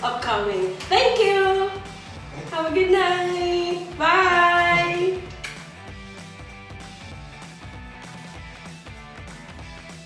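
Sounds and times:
quiet music: 0:00.0 - 0:09.9.

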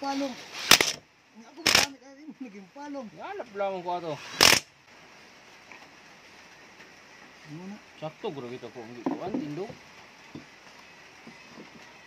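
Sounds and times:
impact wrench rattling: 0:00.6 - 0:01.0.

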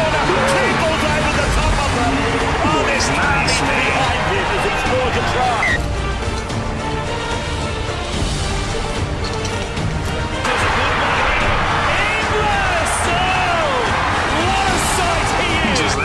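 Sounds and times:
stadium crowd cheering: 0:00.0 - 0:06.0, 0:10.4 - 0:16.0
background music: 0:00.0 - 0:16.0.

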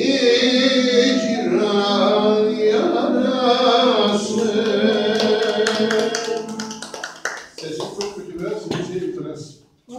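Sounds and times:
man singing: 0:00.0 - 0:06.6.

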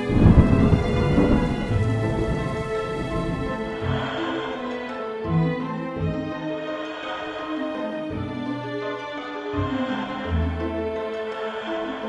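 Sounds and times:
deep thunder rumble: 0:00.0 - 0:04.0
held orchestral notes: 0:00.0 - 0:12.0.

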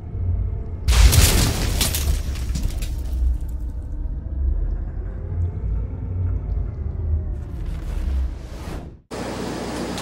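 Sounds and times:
deep cinematic rumble: 0:00.0 - 0:09.1.

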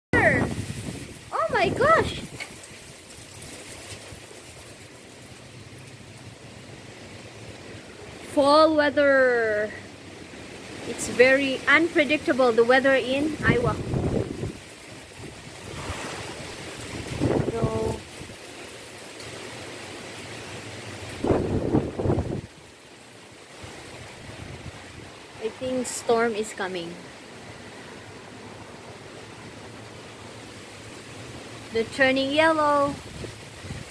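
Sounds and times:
wind gust buffeting microphone: 0:00.1 - 0:02.6, 0:10.8 - 0:18.4, 0:21.1 - 0:22.7, 0:23.6 - 0:26.3, 0:31.7 - 0:33.9
wind rustling tree leaves: 0:00.1 - 0:33.9.

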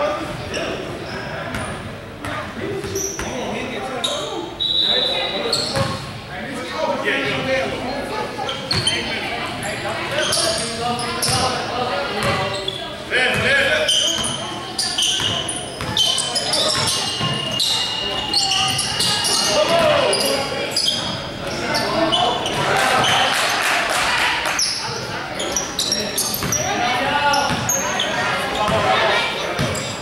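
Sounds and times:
sneaker squeaks: 0:00.0 - 0:06.2, 0:08.4 - 0:23.6, 0:24.4 - 0:30.0
players shouting: 0:21.5 - 0:29.6.

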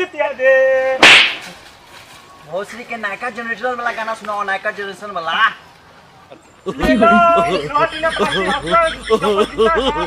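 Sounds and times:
slap to the face: 0:01.0 - 0:01.6.

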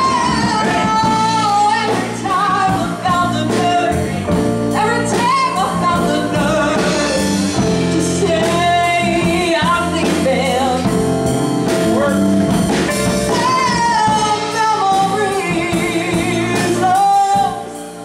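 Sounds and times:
woman singing lead vocal: 0:00.0 - 0:11.2, 0:13.2 - 0:18.0
soul band playing: 0:00.0 - 0:18.0.

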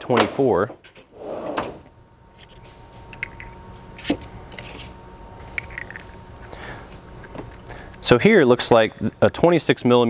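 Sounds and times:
metal drawer sliding on runners: 0:01.1 - 0:01.8.

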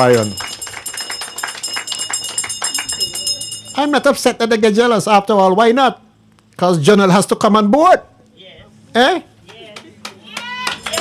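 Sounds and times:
audience applauding: 0:00.0 - 0:03.6, 0:09.8 - 0:11.0.

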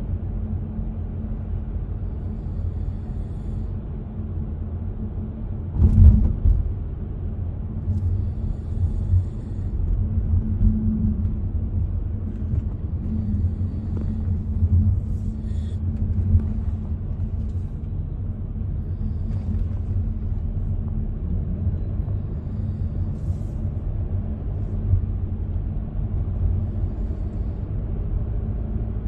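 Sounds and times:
car road rumble inside cabin: 0:00.0 - 0:29.0.

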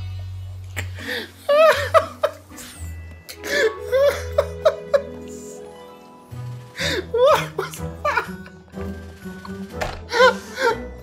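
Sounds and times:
background music: 0:00.0 - 0:11.0
high-pitched laughter: 0:03.8 - 0:05.3.

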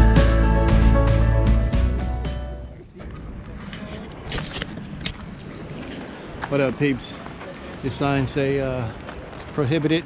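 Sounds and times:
outdoor background noise: 0:02.5 - 0:10.0
scuffs on gravel path: 0:03.0 - 0:10.0.

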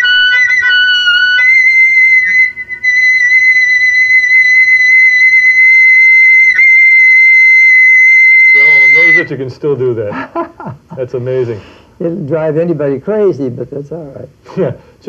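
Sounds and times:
clarinet high held note: 0:00.0 - 0:09.3.

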